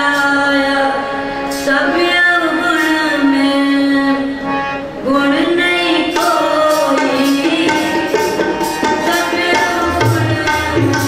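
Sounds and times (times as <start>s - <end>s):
woman singing a hymn: 0.0s - 4.4s, 5.0s - 8.0s, 9.0s - 11.0s
harmonium accompaniment: 0.0s - 11.0s.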